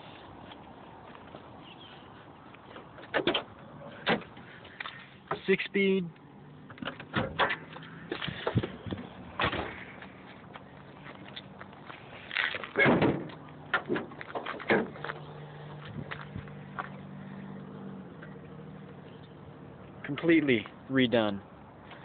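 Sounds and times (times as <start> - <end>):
car door and hood clunks: 6.7 - 9.8, 12.8 - 15.1.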